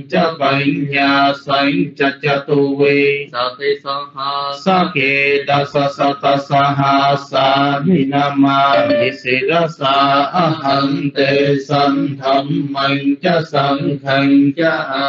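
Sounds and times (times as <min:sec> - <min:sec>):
man chanting verses: 0:00.0 - 0:15.0.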